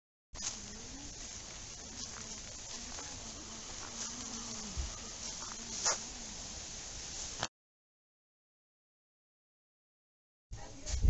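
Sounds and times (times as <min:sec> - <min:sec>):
flying insect buzzing: 0:00.4 - 0:07.5.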